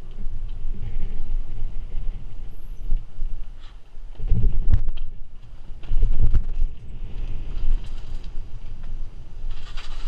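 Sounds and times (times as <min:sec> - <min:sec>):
bike tyre noise on pavement: 0:00.0 - 0:10.0
wind buffeting microphone: 0:00.0 - 0:10.0.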